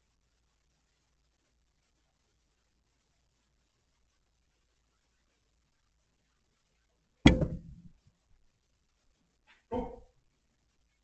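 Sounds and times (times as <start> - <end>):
quiet knock: 7.3 - 7.9.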